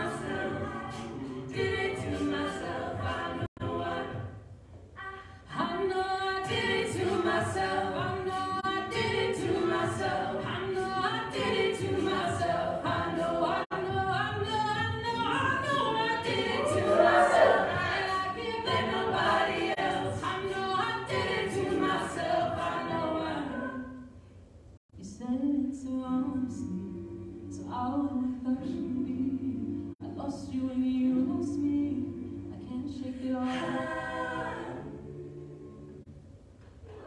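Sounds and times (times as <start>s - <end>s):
a cappella group singing in harmony: 0.0s - 24.2s, 25.0s - 37.0s.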